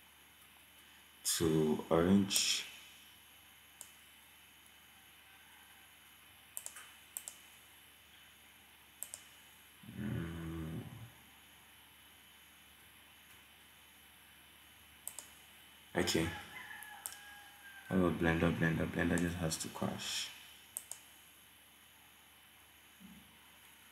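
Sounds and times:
computer mouse clicks: 3.8 - 4.0, 6.6 - 7.6, 9.0 - 9.4, 15.0 - 15.4, 17.0 - 17.2, 20.7 - 21.2
person humming briefly: 9.8 - 11.1.

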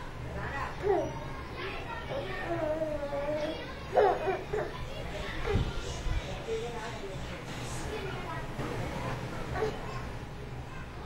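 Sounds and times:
baby babbling and cooing: 2.1 - 4.8.

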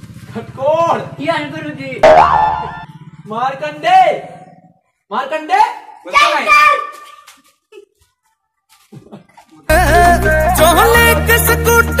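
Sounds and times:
cartoon boing sound effect: 2.0 - 2.9.

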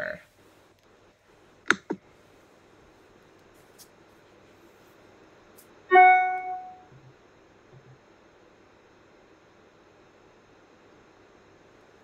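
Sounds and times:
bright notification chime: 5.9 - 6.8.

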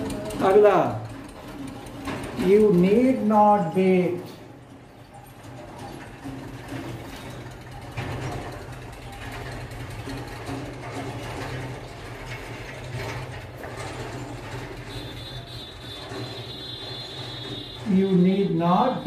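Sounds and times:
thin high squeak: 14.2 - 19.0.

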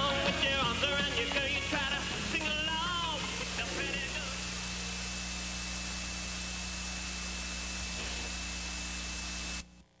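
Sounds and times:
faint high whine: 0.0 - 10.0
low mains hum: 0.0 - 10.0
tape hiss and static: 0.0 - 10.0.

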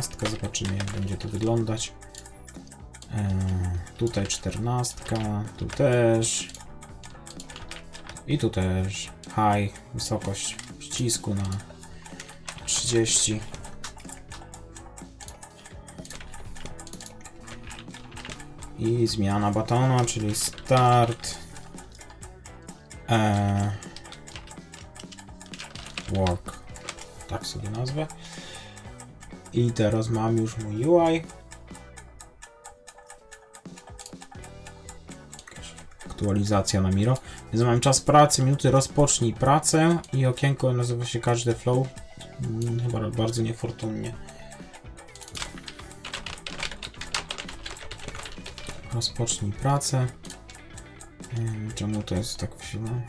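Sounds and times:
keyboard typing: 0.0 - 53.0
quiet background music: 0.0 - 53.0.

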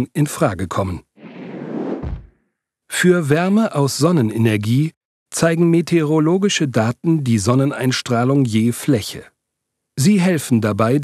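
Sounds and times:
low thump: 1.2 - 2.4
whoosh: 1.2 - 2.4.

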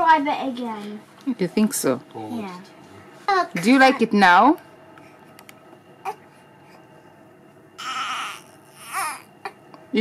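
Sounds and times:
newborn baby crying: 7.8 - 9.6.

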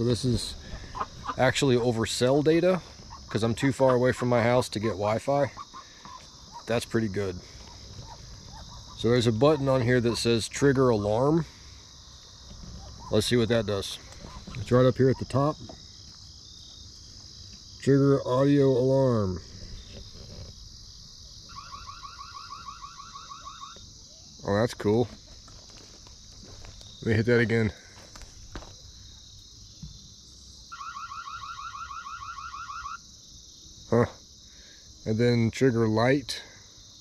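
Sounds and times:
man speaking: 0.0 - 0.6, 1.4 - 5.6, 6.6 - 7.5, 9.0 - 11.5, 13.1 - 14.0, 14.6 - 15.6, 17.8 - 19.4, 27.0 - 27.8
crickets trilling: 0.0 - 37.0
insects buzzing: 0.0 - 37.0
siren rising chirps: 21.4 - 23.8, 30.7 - 33.0.

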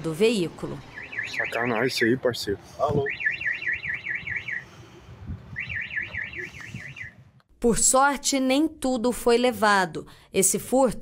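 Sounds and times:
vehicle alarm siren warbling: 0.8 - 2.1, 2.9 - 7.4.

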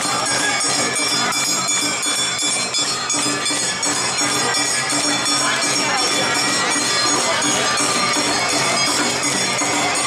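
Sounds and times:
drum and shamisen beat: 0.0 - 10.0.

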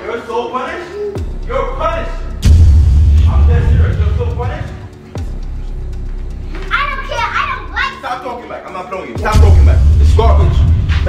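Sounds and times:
child's high-pitched voice: 6.5 - 8.1.

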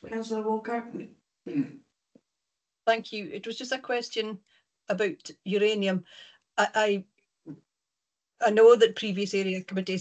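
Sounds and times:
person speaking: 0.0 - 1.8.

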